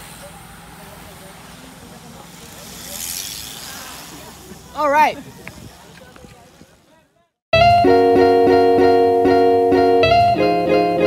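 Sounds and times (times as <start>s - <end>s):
steady outdoor noise: 0.0s - 7.4s.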